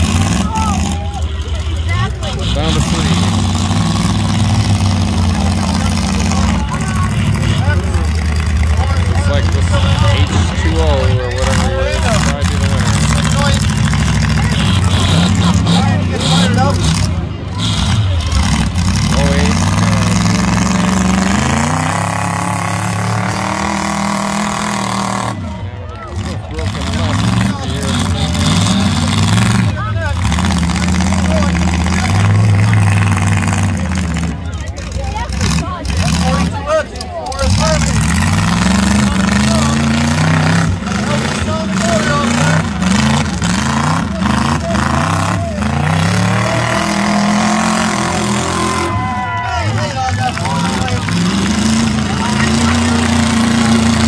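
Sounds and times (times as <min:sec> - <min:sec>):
truck engines revving: 0:00.0 - 0:54.0.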